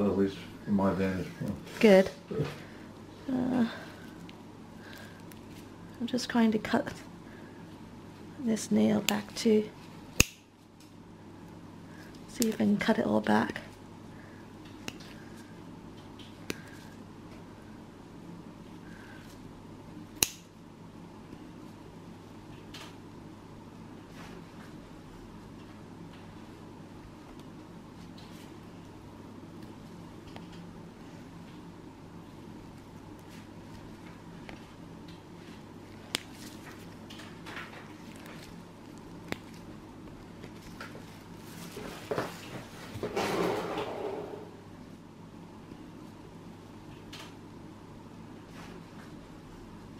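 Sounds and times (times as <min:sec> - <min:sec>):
nail nippers snipping: 0:10.2 - 0:10.4, 0:20.2 - 0:20.5.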